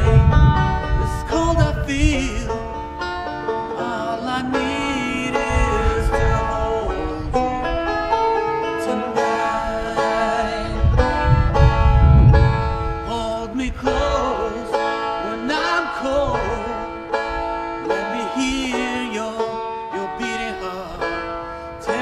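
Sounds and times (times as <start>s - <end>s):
low rumble: 0.0s - 18.7s
banjo picking: 0.0s - 22.0s.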